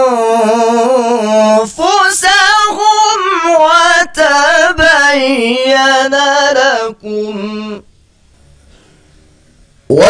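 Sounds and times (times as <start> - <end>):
man chanting recitation: 0.0 - 7.9.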